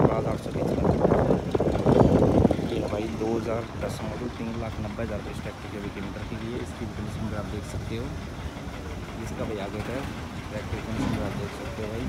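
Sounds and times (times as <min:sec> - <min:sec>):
tractor engine idling: 0:00.0 - 0:12.0
voices talking: 0:00.0 - 0:12.0.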